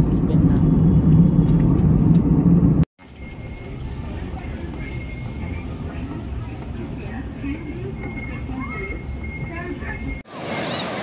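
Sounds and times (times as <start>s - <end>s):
airliner cabin jet engine drone: 0.0s - 11.0s
airport terminal background hum: 3.0s - 10.2s.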